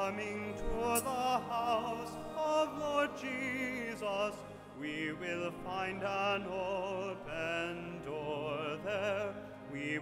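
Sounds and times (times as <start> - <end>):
low sustained accompaniment: 0.0 - 10.0
person singing liturgical chant: 0.0 - 10.0.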